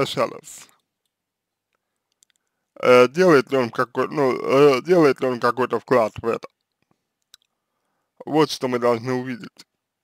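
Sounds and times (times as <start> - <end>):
man speaking: 0.0 - 0.8, 2.8 - 6.6, 8.2 - 9.7
faint click: 0.7 - 2.5.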